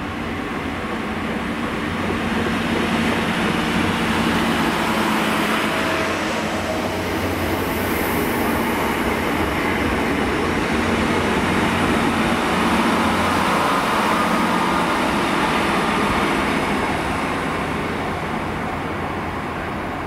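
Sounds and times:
train diesel engine drone: 0.0 - 20.0
train wheels rumbling on rails: 0.0 - 20.0.

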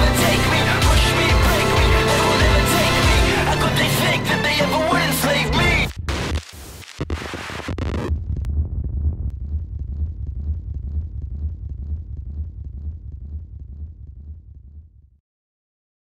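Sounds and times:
music: 0.0 - 5.9
harsh burst of noise: 5.8 - 8.1
deep low rumble: 7.1 - 15.2.

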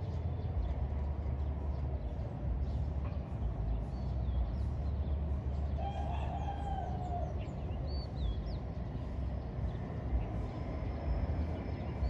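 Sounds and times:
low steady rumble: 0.0 - 12.0
rooster crowing: 5.8 - 7.3.

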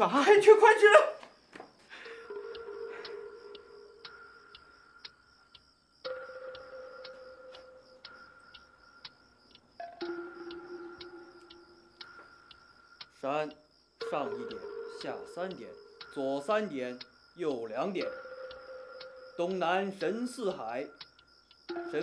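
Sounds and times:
steady ticking: 0.1 - 22.0.

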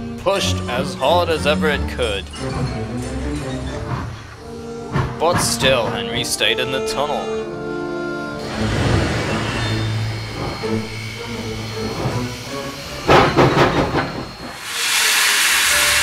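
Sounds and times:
low hum: 8.1 - 15.1
steam hissing: 8.4 - 16.0
steam locomotive chuffing: 8.4 - 16.0.

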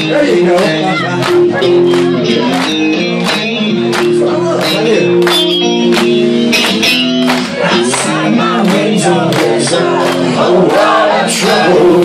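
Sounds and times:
live rock band playing: 0.0 - 10.7
electric guitar chords: 0.0 - 12.0.

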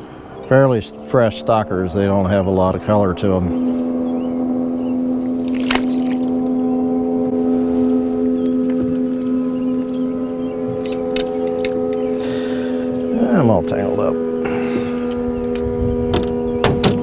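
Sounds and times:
loud steady droning hum: 0.0 - 17.0.

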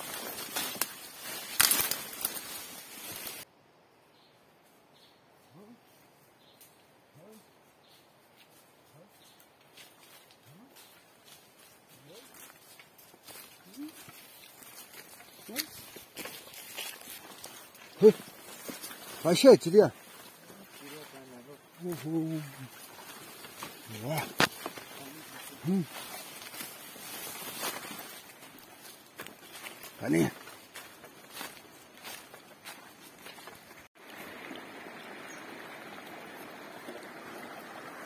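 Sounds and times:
footsteps on a trail: 0.0 - 3.5, 7.5 - 34.0.

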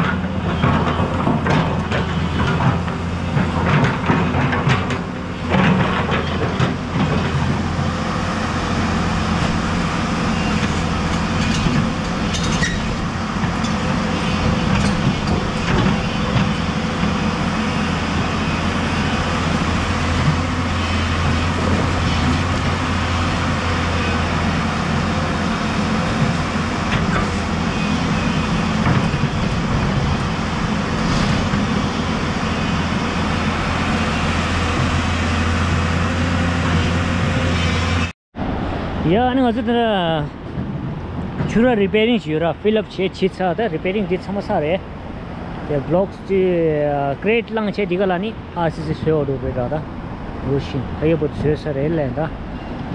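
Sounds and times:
excavator tracks moving: 0.0 - 38.1, 39.0 - 52.9
excavator diesel engine running: 0.0 - 52.9.

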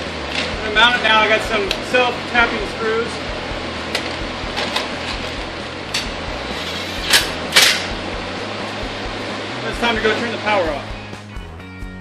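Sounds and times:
steady background rush: 0.0 - 12.0.

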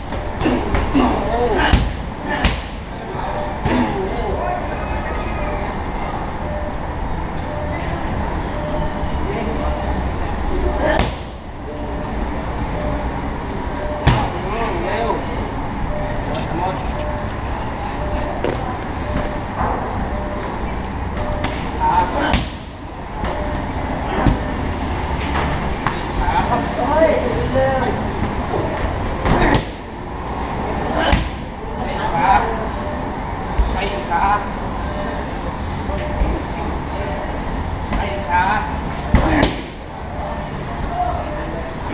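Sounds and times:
low traffic rumble: 0.0 - 41.9
kicks and punches on pads: 1.7 - 2.8, 29.3 - 29.8.

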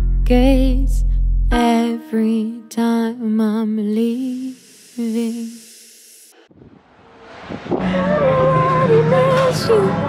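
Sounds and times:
hiss: 4.0 - 6.5
street noise: 6.5 - 10.0.

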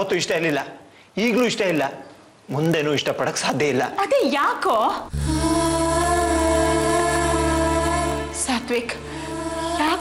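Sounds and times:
held orchestral chord over drone: 5.1 - 10.0.

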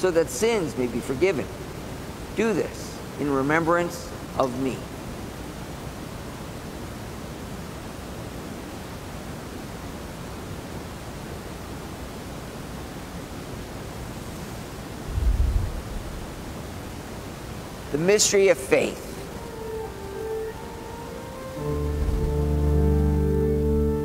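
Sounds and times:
steady background hiss: 0.0 - 24.0
dull low thump: 15.1 - 16.6.

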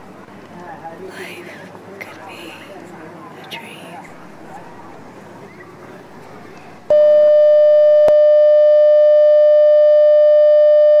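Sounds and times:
electronic test tone: 6.9 - 11.0.

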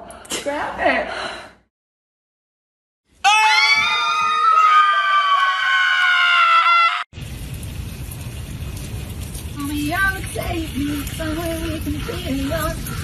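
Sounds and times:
woman screaming: 3.2 - 7.0.

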